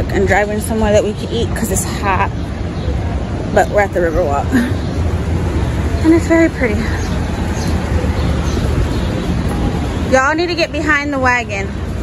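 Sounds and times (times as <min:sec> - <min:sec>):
low rumbling noise: 0:00.0 - 0:12.0.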